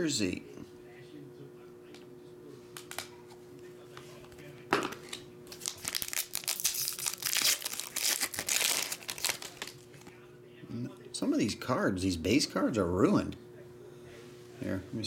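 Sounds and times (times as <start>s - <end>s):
foil wrapper tearing and crinkling: 5.5s - 10.1s.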